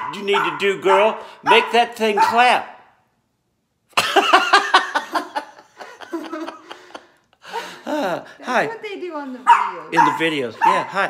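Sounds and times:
hearty laughter in bursts: 0:03.9 - 0:08.4.

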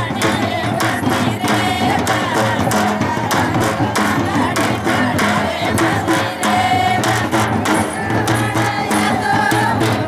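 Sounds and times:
crowd voices: 0:00.0 - 0:10.0
percussive beat: 0:00.0 - 0:10.0
women singing in chorus: 0:00.0 - 0:10.0.

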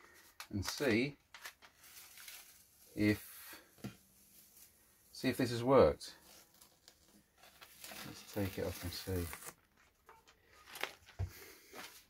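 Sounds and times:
masking tape crackling: 0:06.2 - 0:11.2.

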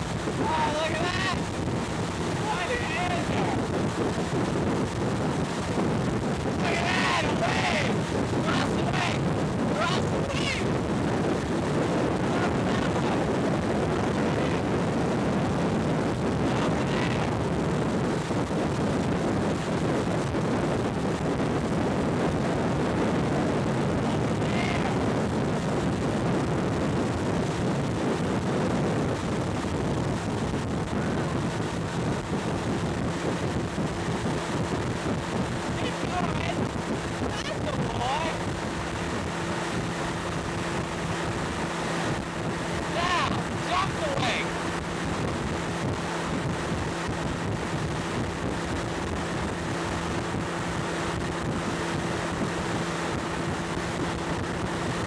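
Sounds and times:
motorboat engine running: 0:00.0 - 0:55.0
rush of boat wake: 0:00.0 - 0:55.0
wind buffeting microphone: 0:00.0 - 0:55.0.

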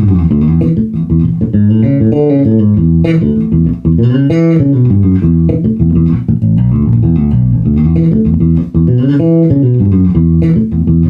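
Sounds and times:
bass guitar melodic line: 0:00.0 - 0:11.0.

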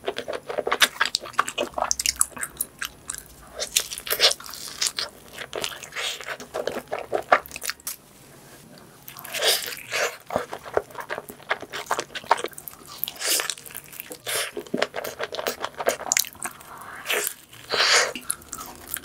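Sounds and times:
biting and chewing pizza: 0:09.1 - 0:19.0.

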